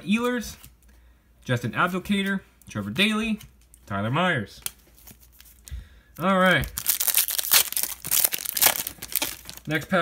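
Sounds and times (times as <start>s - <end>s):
foil wrapper tearing and crinkling: 6.8s - 9.8s.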